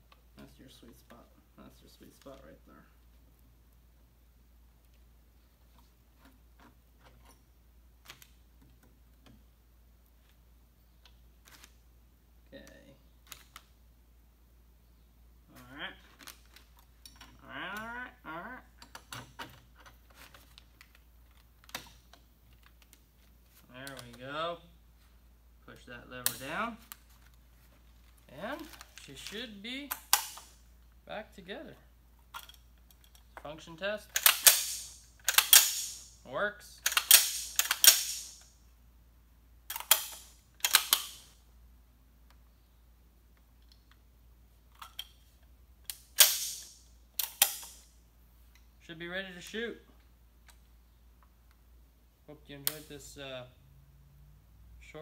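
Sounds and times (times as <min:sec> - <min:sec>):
man making wordless sounds: 0:17.4 - 0:18.8
rifle parts clicking: 0:34.1 - 0:36.0, 0:36.8 - 0:38.5, 0:39.7 - 0:41.3, 0:45.8 - 0:47.9
sharp snap: 0:45.9 - 0:47.9.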